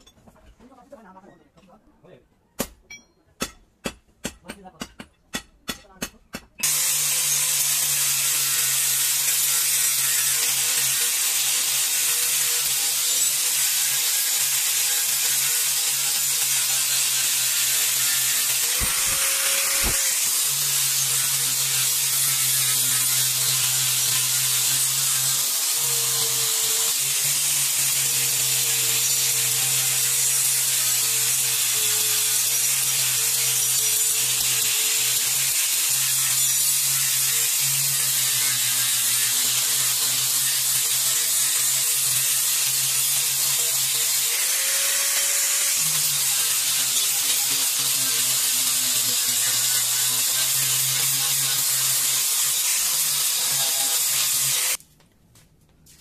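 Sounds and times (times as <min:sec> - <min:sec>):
angle grinder grinding steel: 0:06.6 - 0:54.8.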